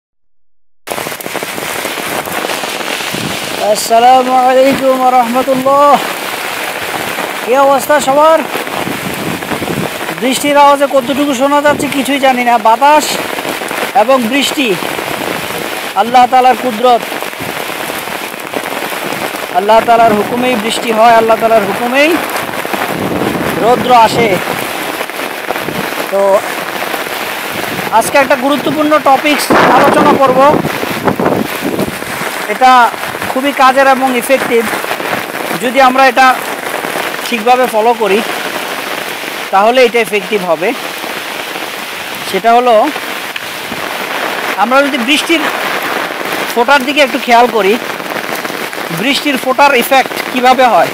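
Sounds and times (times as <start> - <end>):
rain on road and foliage: 0.9 - 50.9.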